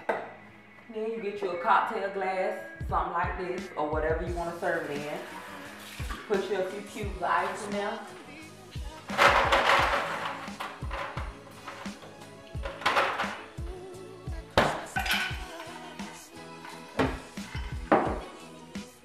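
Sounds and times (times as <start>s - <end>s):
background music: 0.0s - 19.0s
ice cubes clinking into glass: 15.0s - 15.7s.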